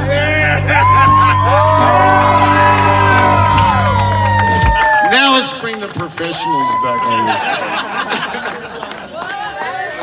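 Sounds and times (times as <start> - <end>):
crowd whooping: 0.0 - 5.6, 6.2 - 8.4.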